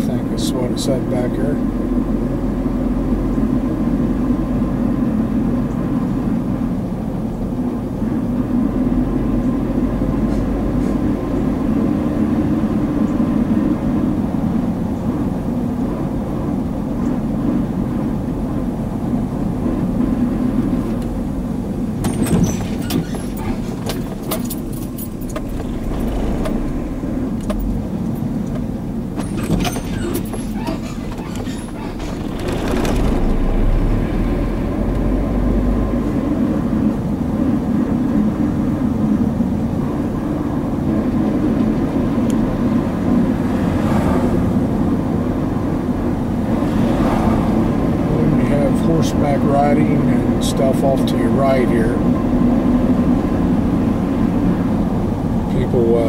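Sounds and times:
car engine and road rumble: 0.0s - 56.0s
clicking and rattling: 22.0s - 26.8s, 27.4s - 33.5s.

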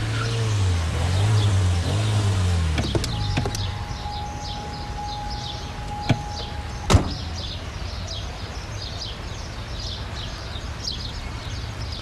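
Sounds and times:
car engine running: 0.0s - 7.6s
birds chirping: 0.0s - 12.0s
car doors clicking and slamming: 2.7s - 4.7s, 5.7s - 7.4s
steady high tone: 3.7s - 7.0s.

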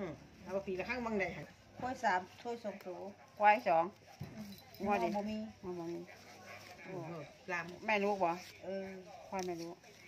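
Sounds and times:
woman talking: 0.0s - 4.0s.

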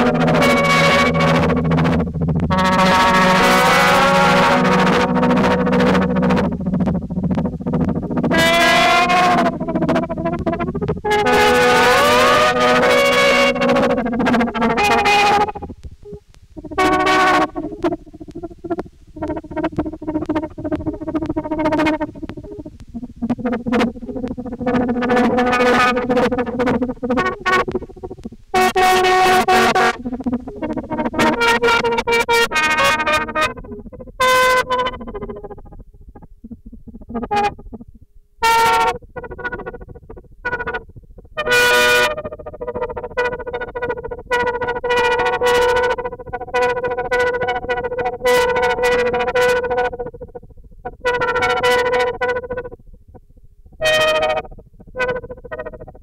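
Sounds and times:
synthesized lap steel guitar notes: 0.0s - 56.0s.

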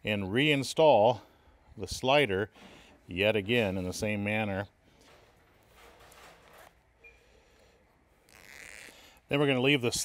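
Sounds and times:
zipper rasping: 8.2s - 9.2s.

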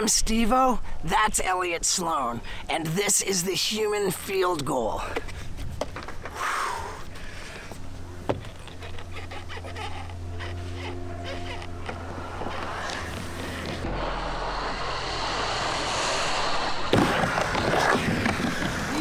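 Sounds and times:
skateboard wheels rolling on wood: 16.9s - 19.0s.

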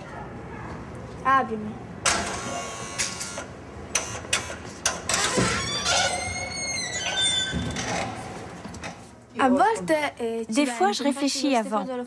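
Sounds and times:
metal door clanking and rattling: 4.8s - 9.0s
metallic hinge squeal: 5.2s - 8.1s.

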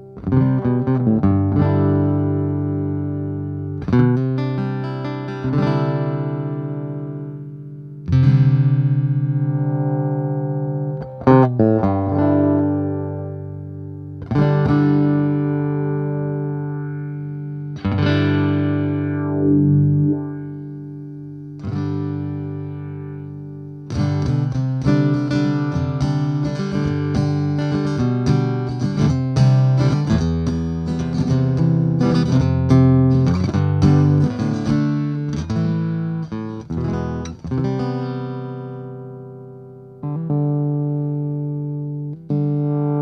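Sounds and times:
acoustic guitar strummed and picked: 0.0s - 43.0s.

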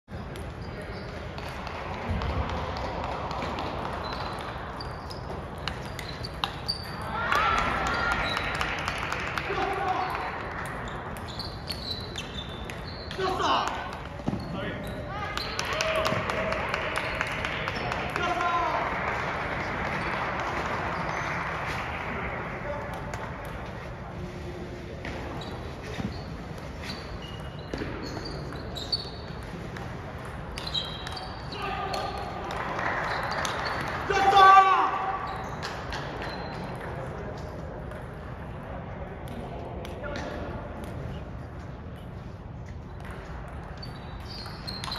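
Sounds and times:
shoes squeaking on wooden floor: 4.0s - 8.5s, 10.8s - 15.6s, 25.0s - 29.6s, 30.6s - 32.2s, 32.9s - 34.0s, 35.0s - 36.8s, 43.7s - 44.9s.

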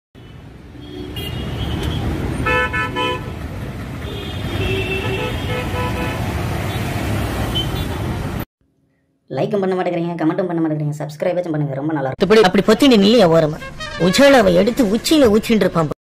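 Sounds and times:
vehicle horns honking: 0.2s - 8.1s, 13.5s - 15.0s
low traffic rumble: 0.4s - 8.4s.

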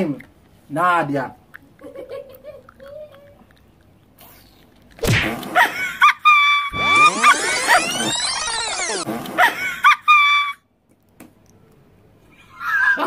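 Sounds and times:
comedic electronic sound effect: 6.7s - 9.8s.

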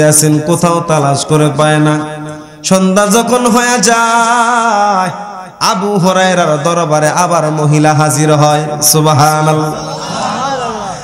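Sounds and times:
man chanting through a microphone: 0.0s - 9.8s.

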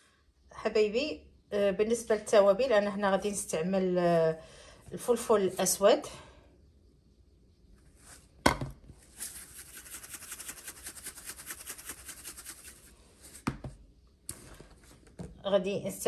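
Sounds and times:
pepper rattling in shaker: 9.0s - 13.0s
pepper shaker clicking: 9.2s - 12.9s.

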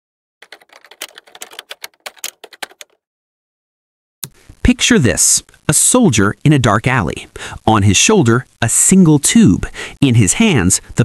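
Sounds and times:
keyboard key clicks: 0.4s - 3.0s.

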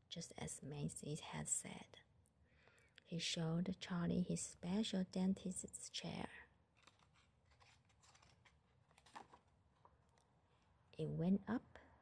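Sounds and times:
paper page rustling: 6.8s - 9.9s.

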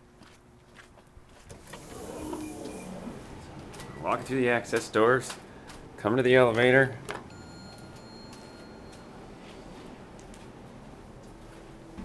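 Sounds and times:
sliding door motor whirring: 1.5s - 4.2s.

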